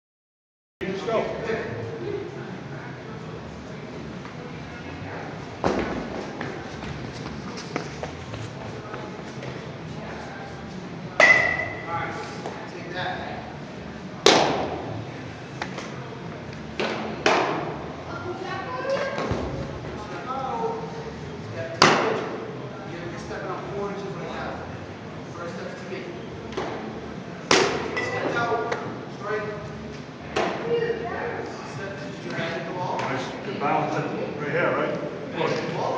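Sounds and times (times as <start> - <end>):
faint voices: 0.9 - 35.9
baseball smacking into mitt: 14.2 - 14.8, 27.5 - 27.9
sharp knocks echoing in a hall: 14.3 - 14.9.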